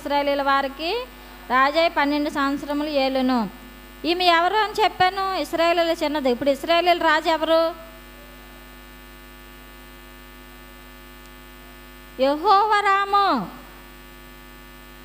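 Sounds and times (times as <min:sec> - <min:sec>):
woman speaking: 0:00.0 - 0:08.0, 0:12.2 - 0:13.7
electrical mains hum: 0:00.0 - 0:15.0.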